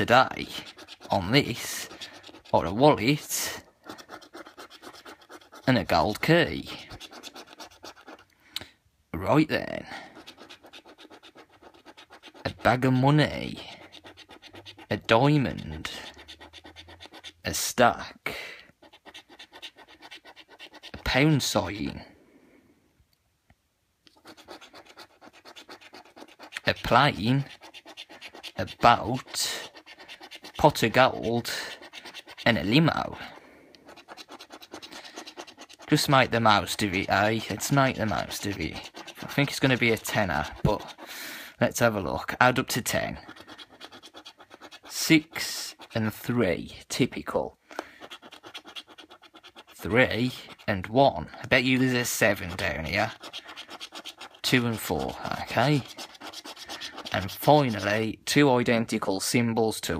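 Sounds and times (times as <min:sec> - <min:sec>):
coin scraping scratchcard: 0:00.0 - 0:08.2, 0:10.0 - 0:17.6, 0:18.8 - 0:21.4, 0:24.1 - 0:41.2, 0:41.9 - 0:46.3, 0:47.8 - 0:58.1.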